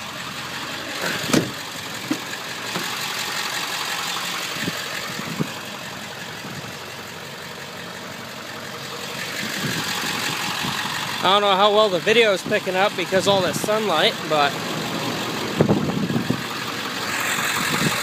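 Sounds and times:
diesel truck engine idling: 0.0 - 18.0.

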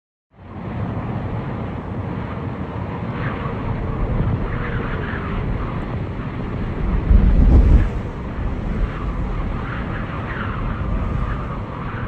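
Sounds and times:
steady low rumble: 0.4 - 12.0.

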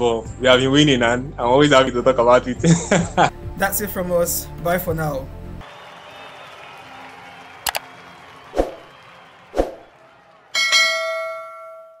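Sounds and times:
loud bell chime: 10.6 - 12.0.

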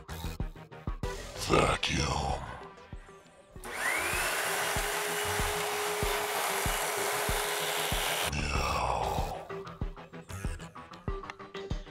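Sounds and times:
vacuum cleaner motor whining: 3.6 - 8.3.

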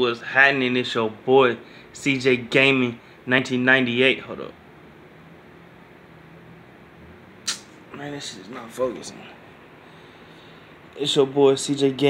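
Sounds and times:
low room hum: 0.0 - 12.0
short sharp hiss: 7.4 - 7.8.

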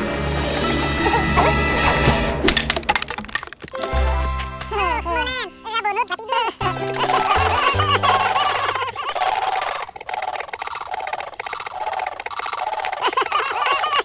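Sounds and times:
cheerful cartoon music: 0.0 - 3.0, 3.6 - 9.1
squeaky character voices: 3.7 - 10.0.

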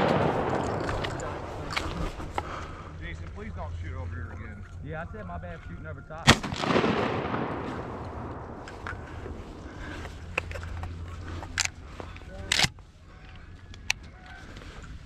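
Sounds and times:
shotgun blast echo: 0.0 - 1.5, 6.2 - 10.0
sharp cracks: 0.0 - 2.6, 6.2 - 11.8, 12.4 - 12.8.

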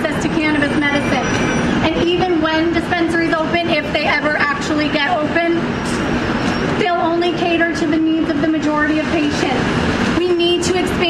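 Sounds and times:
woman speaking: 0.0 - 5.7, 6.8 - 11.0
street traffic noise: 0.0 - 11.0.

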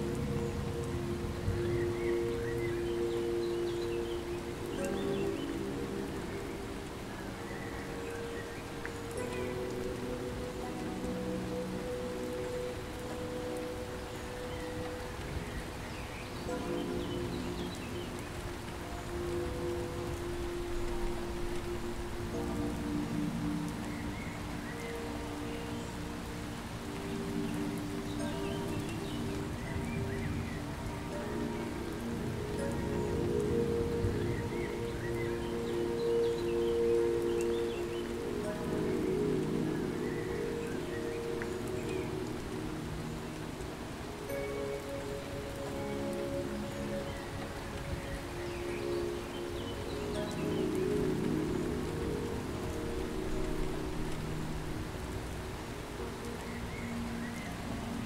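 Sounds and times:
soft music of held chords: 0.0 - 58.0
steady rain: 0.0 - 58.0.

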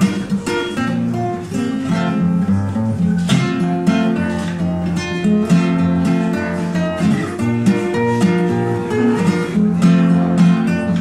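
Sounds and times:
acoustic guitar playing blues: 0.0 - 11.0.

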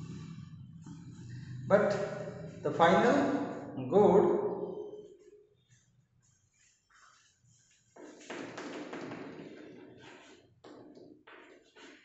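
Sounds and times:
chalk writing on blackboard: 5.8 - 8.6, 9.6 - 12.0.

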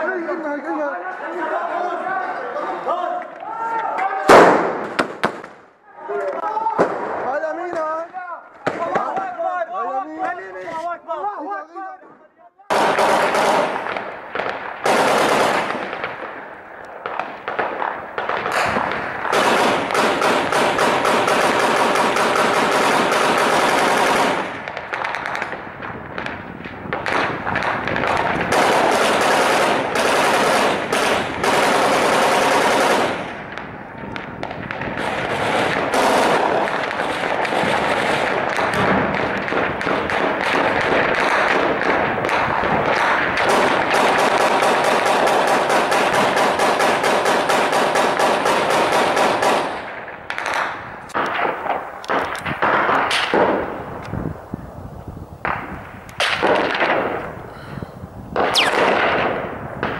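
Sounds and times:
automatic gunfire: 4.3 - 5.6, 12.7 - 16.4, 17.0 - 25.6, 27.0 - 33.4, 34.7 - 53.8, 56.2 - 57.3, 58.4 - 59.9.

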